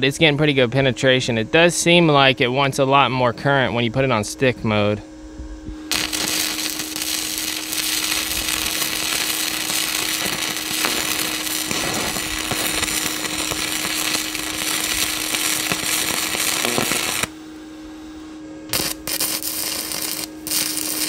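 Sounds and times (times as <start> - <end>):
steady hum: 0.0 - 21.0
welding arc crackling: 5.9 - 17.4, 18.7 - 21.0.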